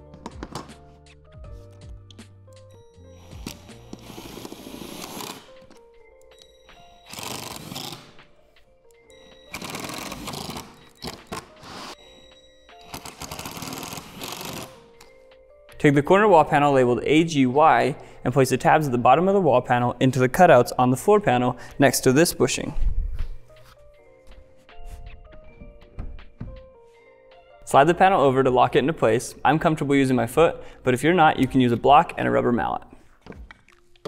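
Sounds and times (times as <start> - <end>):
background music: 0.0 - 34.0
impact driver driving screws: 7.1 - 8.2, 13.0 - 14.8.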